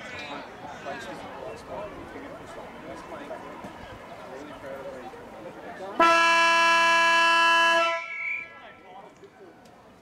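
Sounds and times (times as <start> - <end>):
horn blast: 6.0 - 8.5.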